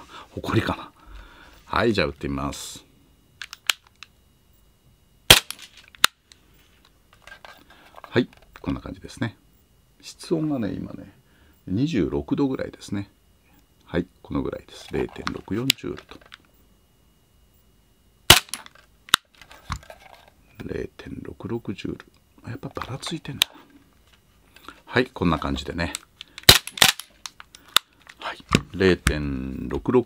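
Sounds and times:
airsoft pistol shot: 5.3s - 5.6s, 18.3s - 18.6s, 26.5s - 27.0s.

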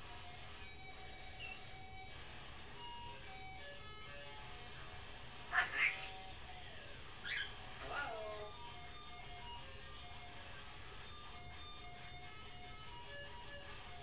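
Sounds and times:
parrot calling: 1.4s - 1.7s, 5.5s - 6.3s, 7.2s - 8.6s.

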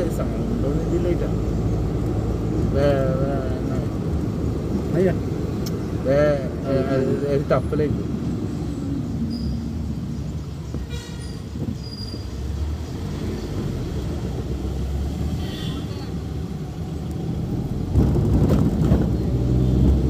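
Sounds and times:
road and engine rumble: 0.0s - 20.0s
vehicle horn toot: 10.8s - 11.5s, 15.4s - 16.2s.

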